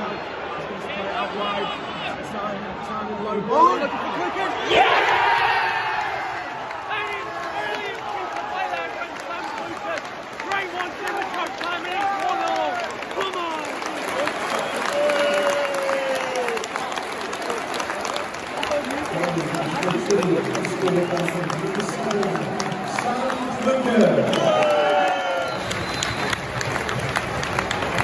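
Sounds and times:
crowd cheering and yelling: 0.0s - 28.0s
crowd clapping: 4.8s - 28.0s.

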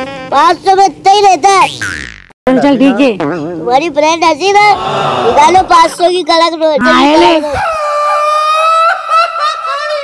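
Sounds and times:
woman laughing: 7.4s - 10.0s.

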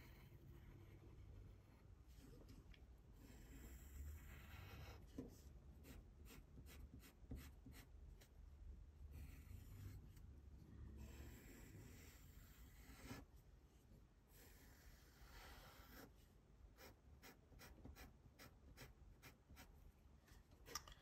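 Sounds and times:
pencil scratching on paper: 0.0s - 2.6s, 3.2s - 8.3s, 9.1s - 10.2s, 11.0s - 13.4s, 14.3s - 19.8s.

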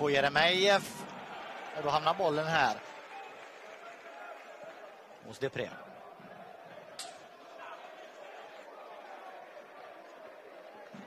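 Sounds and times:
stadium crowd murmuring: 0.0s - 11.0s.

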